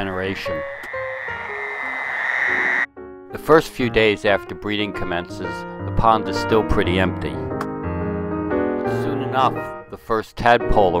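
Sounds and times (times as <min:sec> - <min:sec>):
toads and frogs calling: 0:00.0 - 0:02.9.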